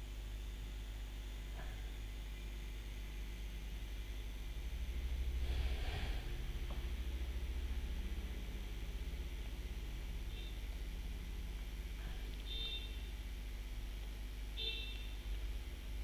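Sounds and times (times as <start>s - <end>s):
microphone hum and hiss: 0.0s - 16.0s.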